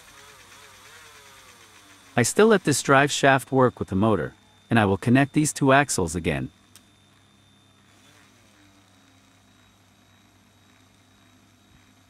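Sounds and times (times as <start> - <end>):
cordless drill motor running: 0.0 - 12.0.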